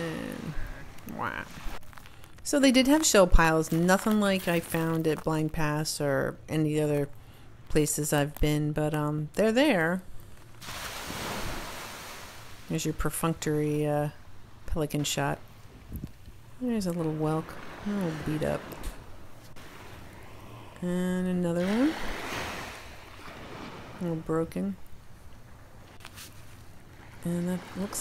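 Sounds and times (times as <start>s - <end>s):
small waves washing onto shore: 0.0s - 5.0s, 10.6s - 12.9s, 16.4s - 28.0s.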